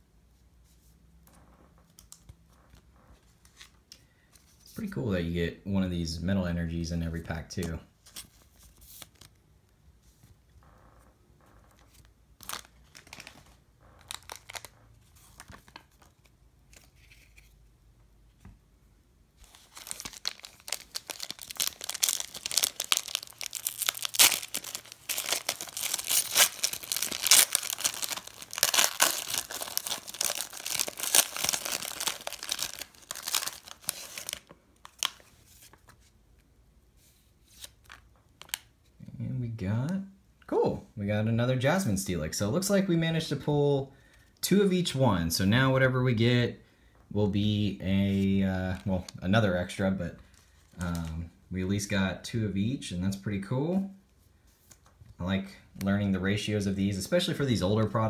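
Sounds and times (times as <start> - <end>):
foil pack crinkling and tearing: 12.4 - 14.7, 19.4 - 35.3.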